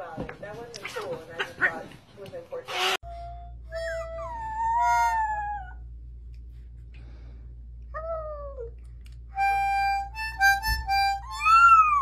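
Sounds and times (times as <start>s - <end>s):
toy harmonica notes: 3.0s - 5.1s, 9.3s - 12.0s
puppy howling: 4.0s - 5.9s, 11.3s - 12.0s.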